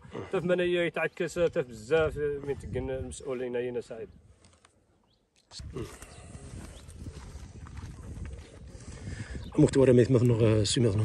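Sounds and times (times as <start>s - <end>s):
wind rumbling on microphone: 1.3s - 3.4s, 5.6s - 11.0s
footsteps on stones and rubble: 5.4s - 9.0s.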